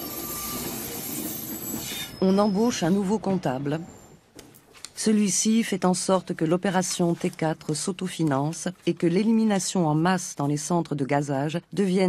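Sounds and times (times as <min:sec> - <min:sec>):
train wheels on rails: 0:00.0 - 0:02.8
high-pitched wheel squeal: 0:00.0 - 0:03.1.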